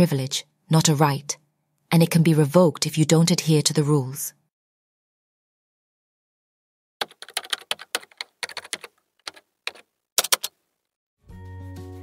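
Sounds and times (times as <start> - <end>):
computer keyboard typing: 7.0 - 10.6.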